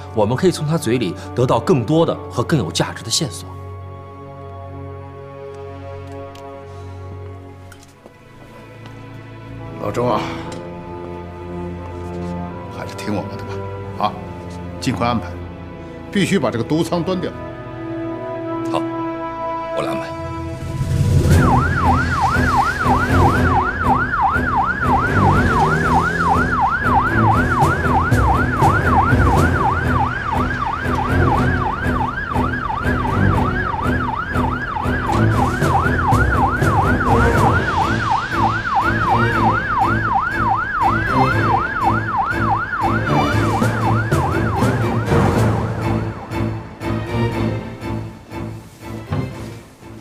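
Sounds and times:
police siren yelping: 21.2s - 46.6s.

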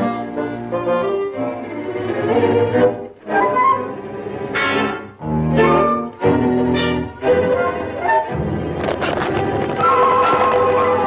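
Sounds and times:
orchestral cartoon music: 0.0s - 11.0s.

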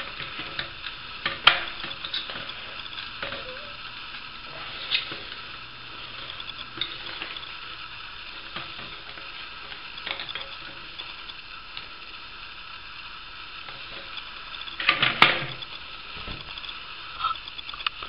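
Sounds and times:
steady hiss: 0.0s - 18.0s
small clicks: 16.5s - 18.0s.

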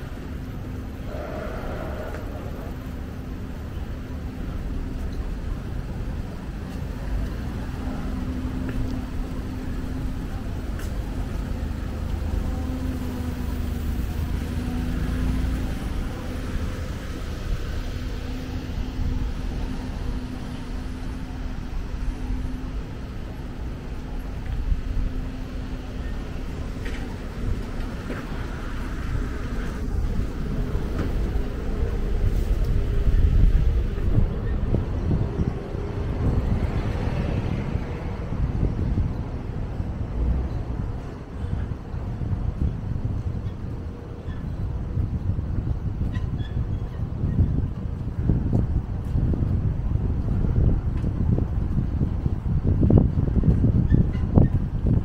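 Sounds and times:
low street rumble: 0.0s - 55.0s
vehicle hum: 0.0s - 55.0s.

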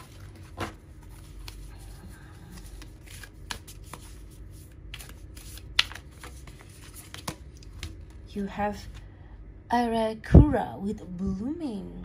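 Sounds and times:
cards being shuffled: 0.0s - 9.0s.

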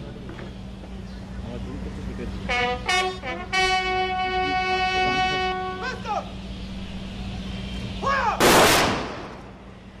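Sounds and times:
shouted drill command: 8.0s - 8.5s.

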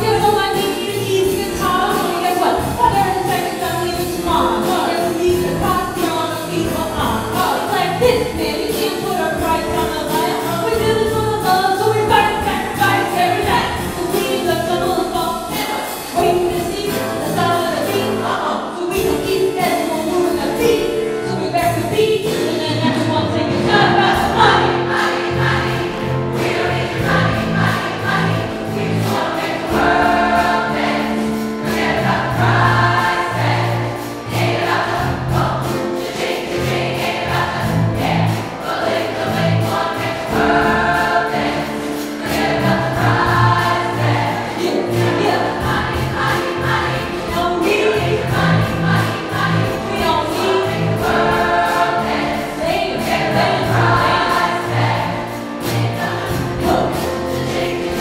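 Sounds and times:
piano accompaniment: 0.0s - 58.0s
women's chorus singing pop song: 0.0s - 58.0s.

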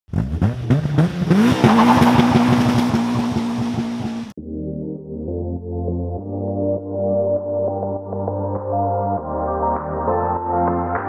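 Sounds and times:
car engine revving: 0.1s - 4.4s.

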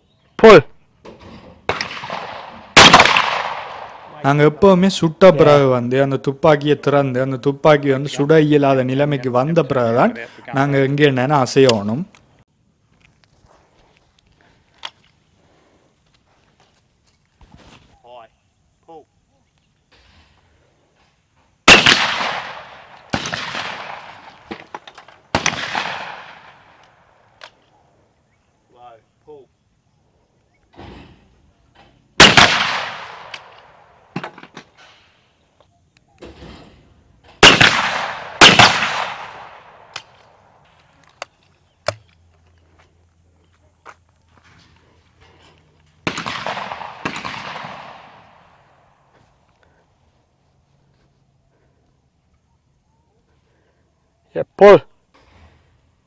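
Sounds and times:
shotgun shots echoing: 1.6s - 4.6s, 21.7s - 27.5s, 32.2s - 34.4s, 37.4s - 40.6s, 46.0s - 48.9s
rustling and shuffling on grass: 11.9s - 18.3s, 40.1s - 53.9s.

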